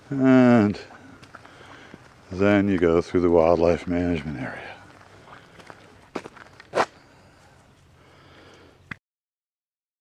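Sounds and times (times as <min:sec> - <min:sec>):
footsteps on gravel: 0:00.5 - 0:07.5.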